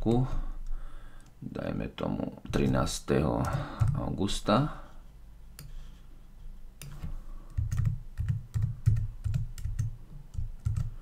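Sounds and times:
typing on computer keyboard: 3.4 - 4.0, 6.8 - 11.0.

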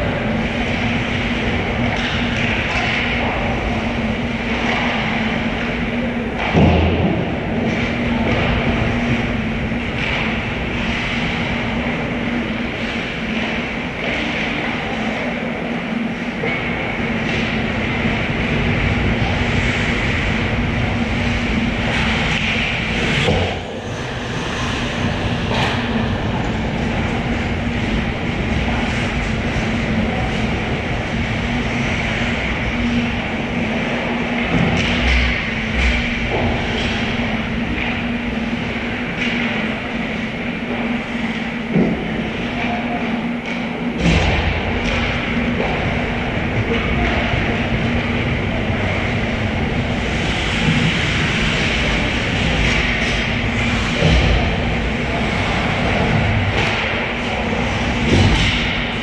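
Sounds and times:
low rink hum: 0.0 - 59.0
skates rumbling on ice: 0.0 - 59.0
hockey sticks and puck knocking: 0.6 - 3.7, 4.4 - 9.2, 9.8 - 15.2.

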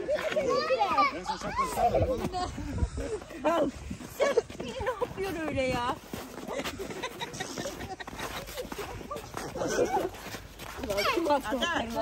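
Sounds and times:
footsteps crunching in snow: 0.0 - 12.0.

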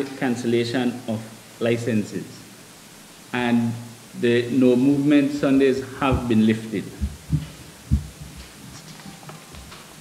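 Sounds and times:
faint steady low hum: 0.0 - 10.0
dull low thumps: 7.0 - 8.6.

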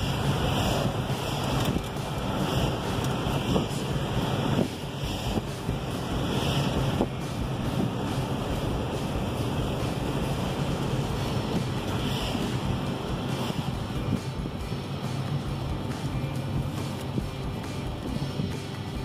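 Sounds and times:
car road noise rumble and hiss: 0.0 - 19.0
low hum: 0.0 - 19.0.

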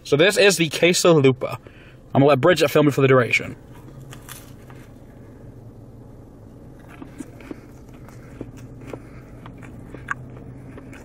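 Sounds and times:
steady low hum: 0.0 - 11.0
faint crunches: 3.7 - 5.0
man chewing food: 6.5 - 11.0.

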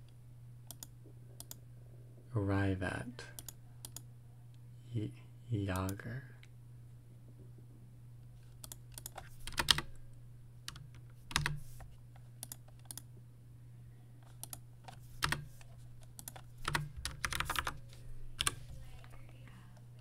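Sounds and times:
steady low hum: 0.0 - 20.0
computer keyboard typing: 0.7 - 1.6, 8.6 - 10.0, 10.7 - 13.1, 14.2 - 19.1.

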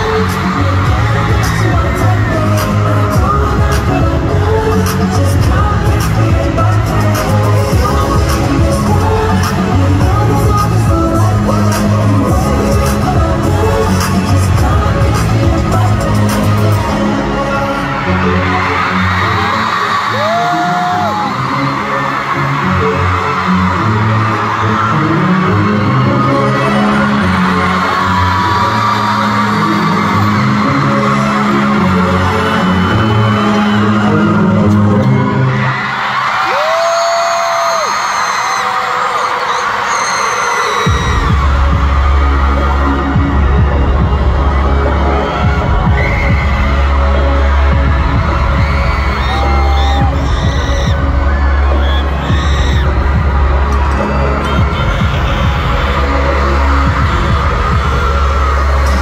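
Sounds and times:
large audience noise: 0.0 - 59.0
live concert music: 0.0 - 59.0
deep pulsing bass beat: 40.9 - 59.0.

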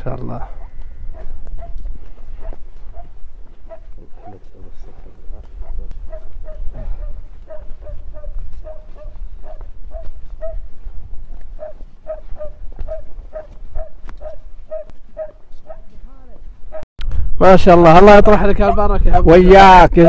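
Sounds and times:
dog yelping: 0.4 - 4.5, 5.3 - 10.7, 11.5 - 15.9
wind rumble on microphone: 5.0 - 14.8.

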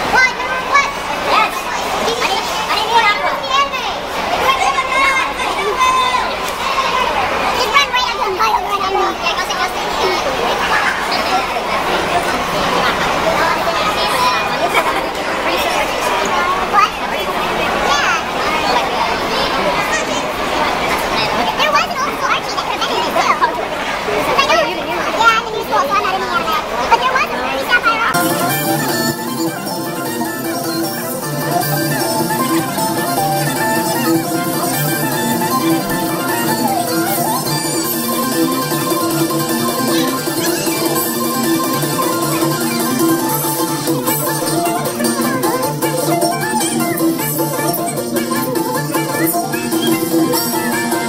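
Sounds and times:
crowd talking: 0.0 - 51.0.

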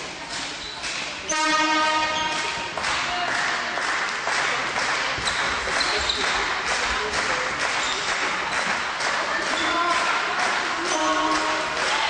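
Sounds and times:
horn steady note: 1.3 - 2.6.

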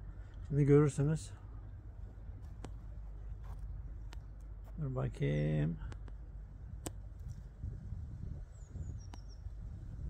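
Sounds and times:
wind rumbling on microphone: 1.4 - 4.6, 5.7 - 10.0
faint high bird chirps: 8.4 - 9.6.

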